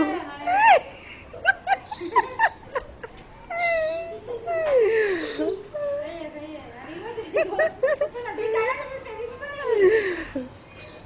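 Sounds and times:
children squealing and crying: 0:03.4 - 0:06.0.

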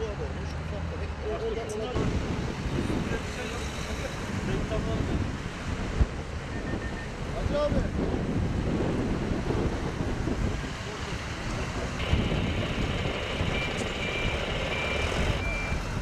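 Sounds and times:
road traffic passing: 0:00.0 - 0:16.0
wind buffeting microphone: 0:02.0 - 0:03.6, 0:04.2 - 0:16.0.

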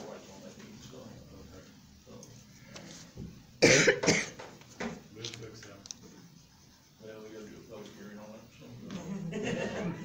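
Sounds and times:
person coughing: 0:03.6 - 0:04.4.

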